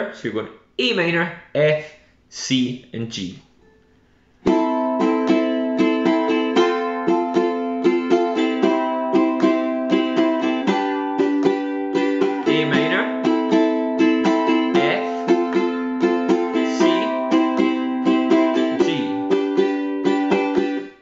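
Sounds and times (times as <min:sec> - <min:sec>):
ukulele strumming: 0:04.4 - 0:21.0.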